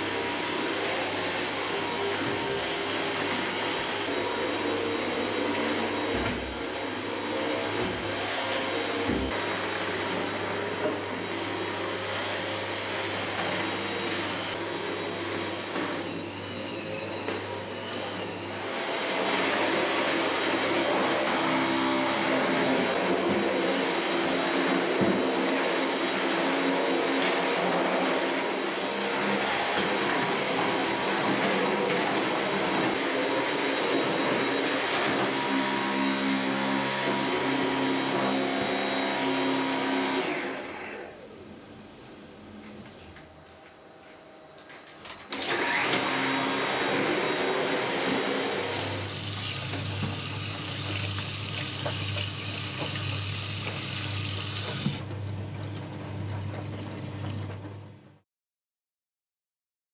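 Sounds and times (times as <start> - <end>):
vacuum cleaner running: 0.0 - 55.4.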